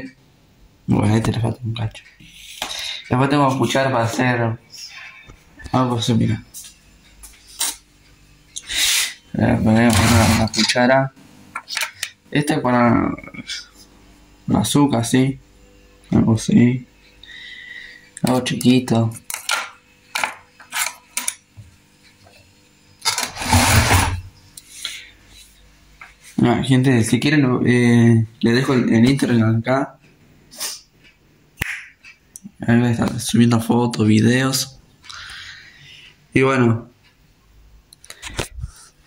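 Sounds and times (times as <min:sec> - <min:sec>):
cutlery scraping: 0:20.2 - 0:21.4.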